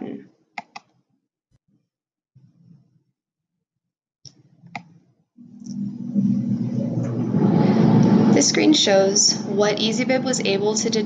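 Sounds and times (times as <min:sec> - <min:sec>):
computer mouse clicks: 0:00.6 - 0:01.0, 0:04.3 - 0:05.0
low background hum: 0:05.4 - 0:11.0.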